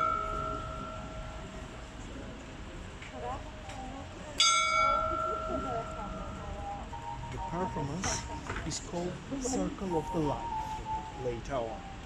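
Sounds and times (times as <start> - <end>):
people talking faintly: 0.0 - 12.0
small bell ringing: 4.4 - 8.3.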